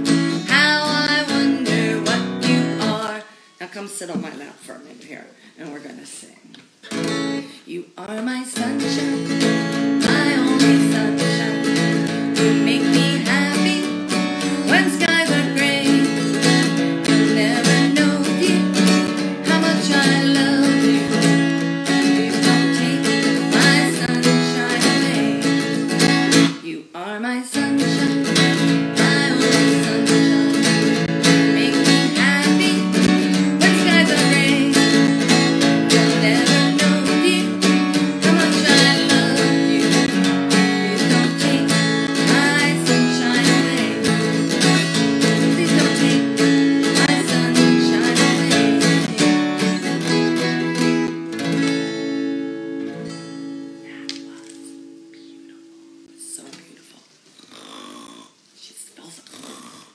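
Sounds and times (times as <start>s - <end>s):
woman singing: 0.0s - 4.4s, 7.4s - 51.1s
acoustic guitar strumming chords: 0.0s - 4.5s, 6.8s - 7.6s, 8.6s - 26.7s, 27.5s - 56.8s.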